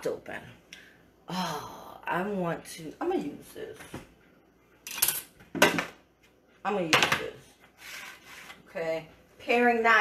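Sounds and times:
metal kitchenware clattering: 0:04.8 - 0:05.9.

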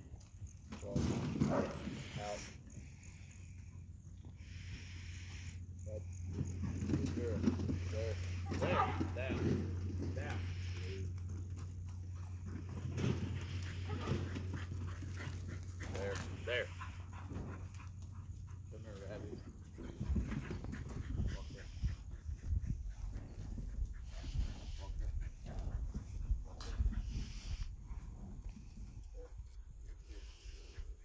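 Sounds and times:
low uneven rumbling noise: 0:00.1 - 0:31.0.

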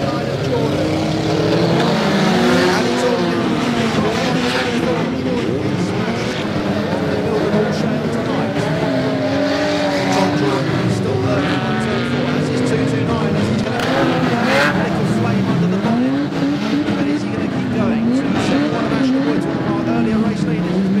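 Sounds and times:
car engines revving: 0:00.0 - 0:21.0.

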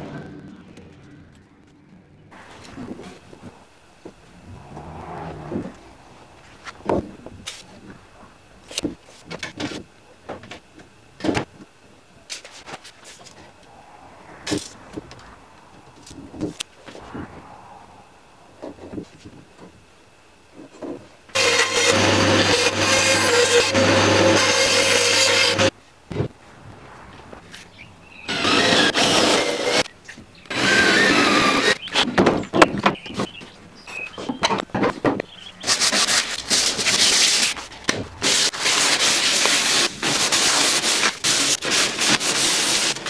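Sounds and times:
electric power tool cutting wood: 0:21.3 - 0:25.7, 0:28.3 - 0:29.9, 0:30.5 - 0:32.0
sandpaper rubbing on wood: 0:35.6 - 0:43.0.

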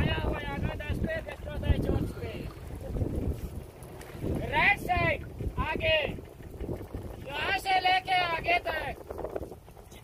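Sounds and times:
low boat rumble: 0:00.0 - 0:10.0
wind buffeting microphone: 0:00.0 - 0:10.0.

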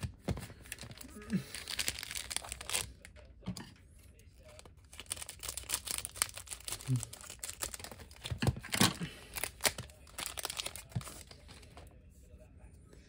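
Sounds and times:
foil wrapper crinkling: 0:00.4 - 0:03.1, 0:04.4 - 0:11.7
scissors cutting foil pack: 0:00.7 - 0:02.9, 0:04.6 - 0:11.3.

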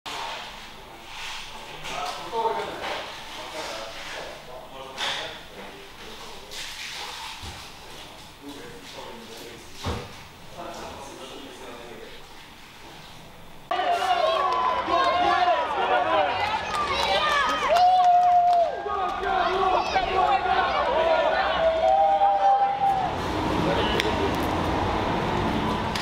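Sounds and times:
crowd shouting and chanting: 0:13.7 - 0:24.2
crowd murmur: 0:13.7 - 0:26.0.

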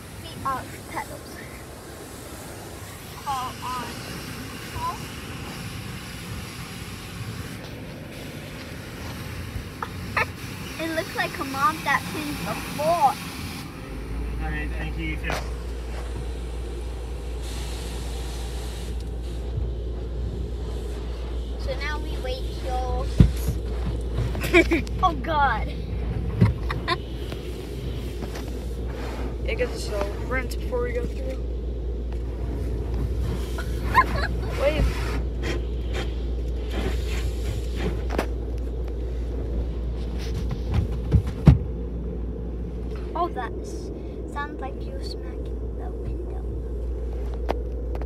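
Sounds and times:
water spraying against car: 0:00.0 - 0:43.4
low rumble: 0:12.0 - 0:48.0.

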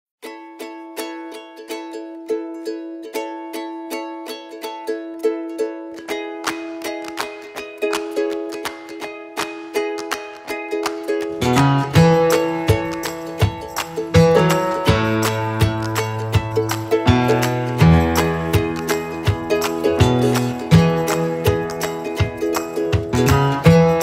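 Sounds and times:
plucked strings tune: 0:00.2 - 0:24.0
bass: 0:11.4 - 0:24.0.

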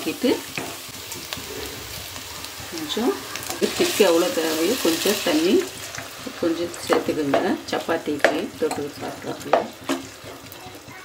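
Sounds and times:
food sizzling in hot oil: 0:00.0 - 0:11.0
spatula scraping frying pan: 0:00.4 - 0:11.0.

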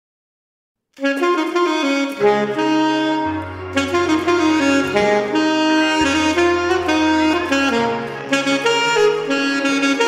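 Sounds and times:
alto saxophone melody: 0:01.0 - 0:10.0.

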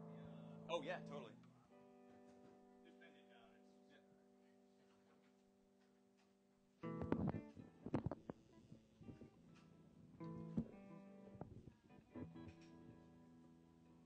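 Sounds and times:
electric guitar strumming: 0:00.0 - 0:03.6, 0:06.8 - 0:14.0.

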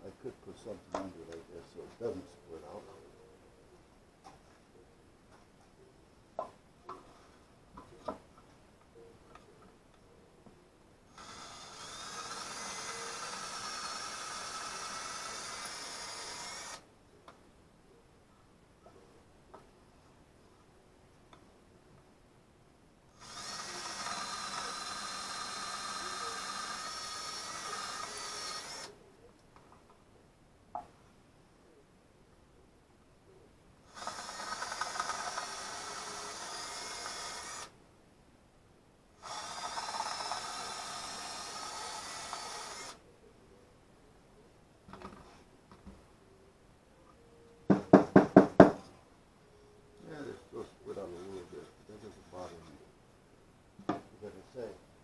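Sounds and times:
cordless drill boring wood: 0:11.1 - 0:16.8, 0:23.2 - 0:28.9, 0:33.9 - 0:37.7, 0:39.2 - 0:43.0.

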